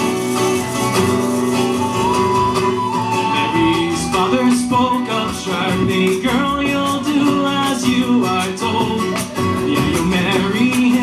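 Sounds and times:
high whistle melody: 0.0 - 7.6
double bass: 0.0 - 11.0
strummed acoustic guitars: 0.0 - 11.0.

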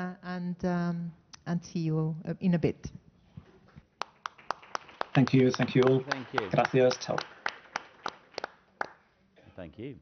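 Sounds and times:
hand claps: 4.0 - 9.0.

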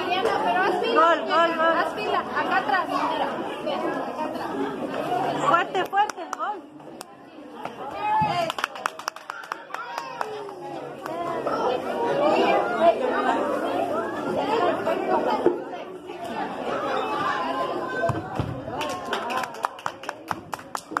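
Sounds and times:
crowd of people talking: 0.0 - 21.0.

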